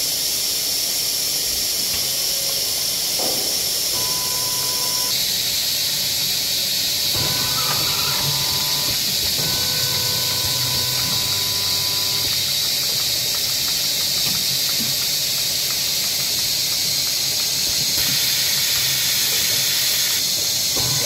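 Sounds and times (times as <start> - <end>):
bottling machine hissing: 0.0 - 21.0
faint machine whine: 3.9 - 13.6, 17.8 - 21.0.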